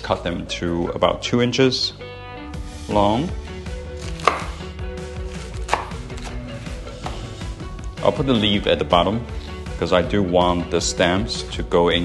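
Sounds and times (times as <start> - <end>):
knife strikes on wooden board: 4.2 - 4.6, 5.7 - 6.3.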